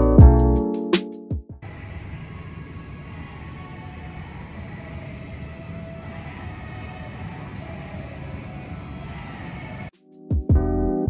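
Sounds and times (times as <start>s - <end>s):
music with heavy bass: 0.0s - 1.1s, 10.2s - 11.0s.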